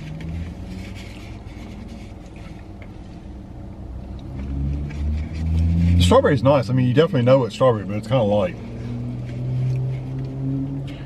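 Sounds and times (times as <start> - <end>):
car engine rumble: 0.0 - 11.0.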